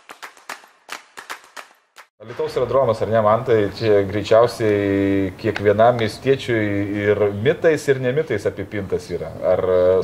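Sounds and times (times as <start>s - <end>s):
sharp clap-like percussive hits: 0.0s - 2.6s.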